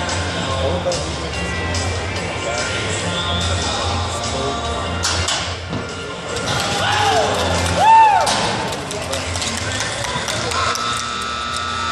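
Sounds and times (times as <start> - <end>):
voices in arena: 0.0 - 5.2, 5.8 - 11.9
background music: 0.0 - 11.9.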